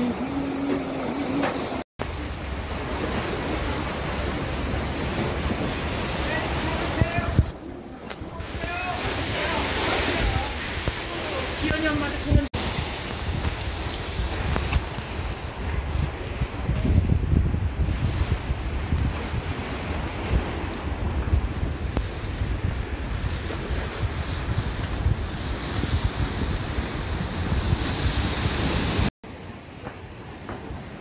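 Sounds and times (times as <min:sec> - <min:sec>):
wind buffeting microphone: 0:00.0 - 0:29.1
ocean surf rushing: 0:00.0 - 0:31.0.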